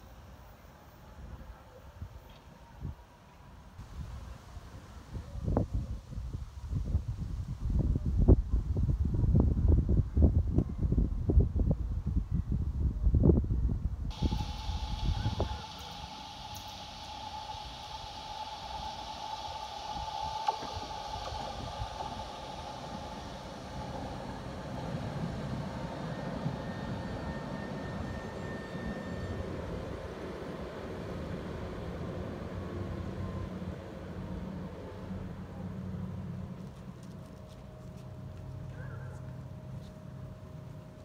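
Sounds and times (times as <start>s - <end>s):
tram running rumble: 0.0s - 41.0s
wind on microphone: 3.8s - 35.2s
steady high whine: 14.1s - 41.0s.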